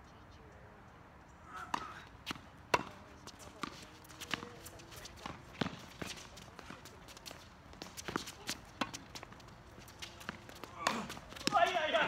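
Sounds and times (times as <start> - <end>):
racket hitting tennis ball: 1.6 - 12.0
footsteps on court: 1.7 - 12.0
ball bouncing on court: 10.0 - 12.0.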